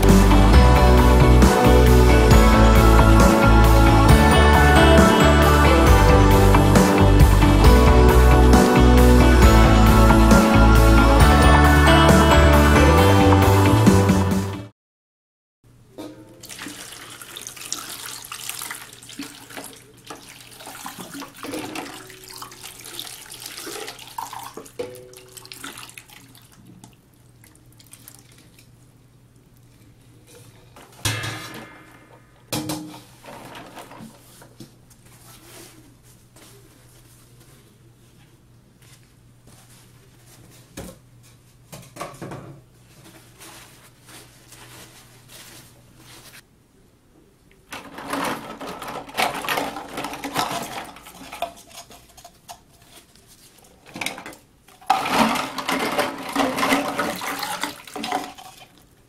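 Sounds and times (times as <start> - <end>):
water sloshing in metal bowl: 16.1 - 28.7, 47.8 - 58.9.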